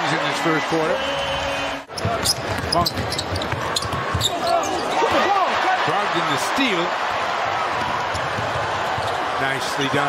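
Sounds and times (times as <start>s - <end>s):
crowd noise: 0.0s - 10.0s
sneaker squeaks: 1.9s - 5.2s.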